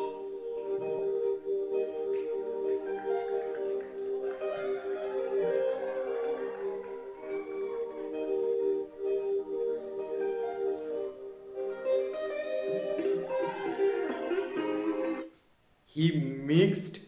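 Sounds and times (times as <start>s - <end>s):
plucked guitar melody: 11.7s - 15.3s.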